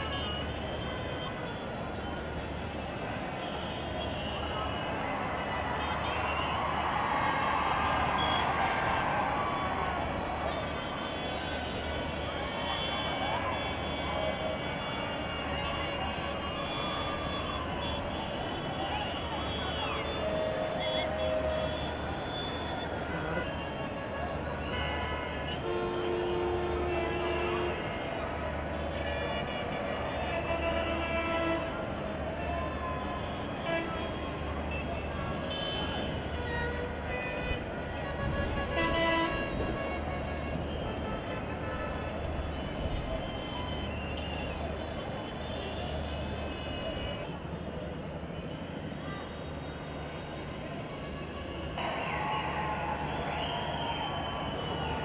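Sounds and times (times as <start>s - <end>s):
vehicle horns: 0.0s - 5.0s, 10.5s - 47.3s
crowd hubbub: 0.0s - 55.0s
road traffic: 0.0s - 55.0s.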